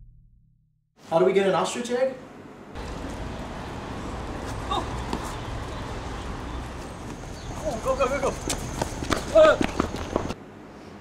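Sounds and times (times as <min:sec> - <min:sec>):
person shouting: 0:04.7 - 0:05.0.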